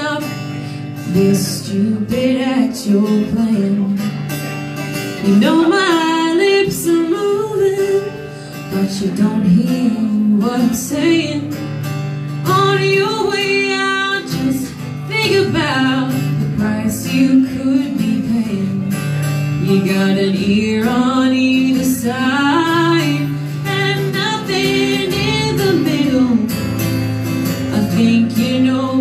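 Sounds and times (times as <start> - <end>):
woman singing: 0.0 - 4.3, 5.1 - 29.0
strummed acoustic guitars: 0.0 - 29.0.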